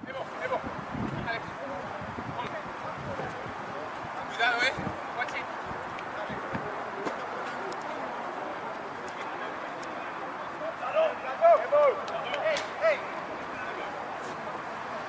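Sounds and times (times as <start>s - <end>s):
open-air hiss: 0.0s - 15.0s
people shouting calls: 10.4s - 14.0s.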